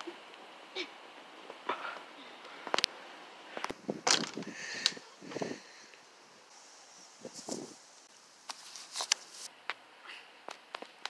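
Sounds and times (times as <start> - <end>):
rustling: 1.4 - 9.5.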